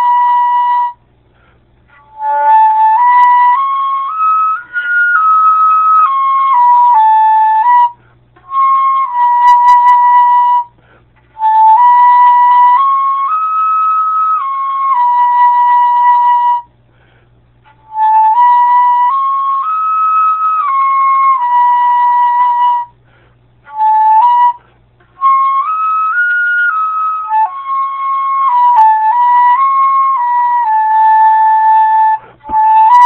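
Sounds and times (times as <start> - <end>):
flute playing: 0.0 - 16.8, 17.6 - 33.0.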